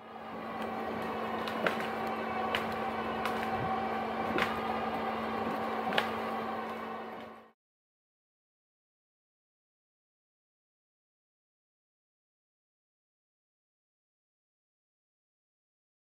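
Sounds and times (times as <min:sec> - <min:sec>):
electric winch motor hum: 0:00.0 - 0:07.6.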